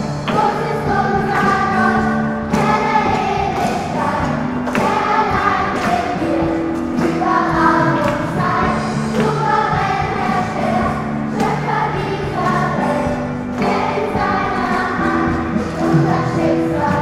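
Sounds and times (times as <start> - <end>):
choir singing gospel song: 0.0 - 17.0.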